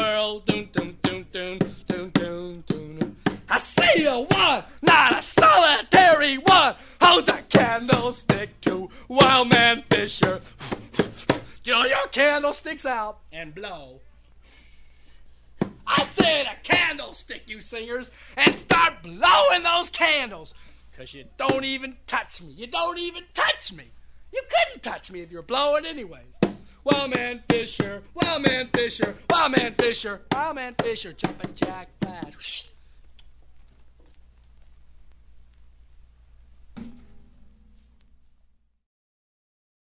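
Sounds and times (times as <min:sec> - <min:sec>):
man's voice: 0:00.0 - 0:14.0, 0:15.8 - 0:32.8
faint hiss: 0:00.0 - 0:38.8
low tape hum: 0:00.0 - 0:38.8.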